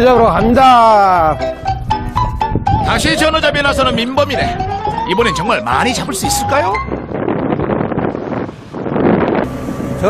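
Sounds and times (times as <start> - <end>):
wind buffeting microphone: 0.0 - 10.0
boat engine running: 3.2 - 10.0
water rushing past hull: 6.9 - 10.0.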